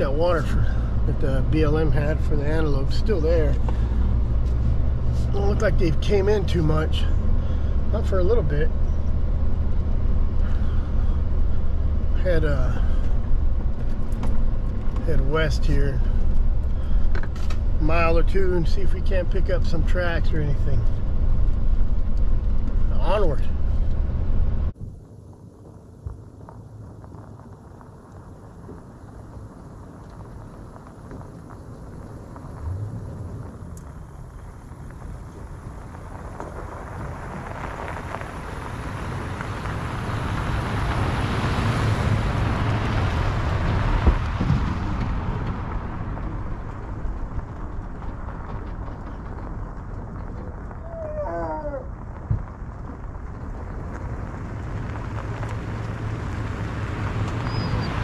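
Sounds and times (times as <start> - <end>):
truck engine passing: 0.0 - 24.7, 32.4 - 52.1, 53.6 - 58.0
tyres on gravel: 0.0 - 58.0.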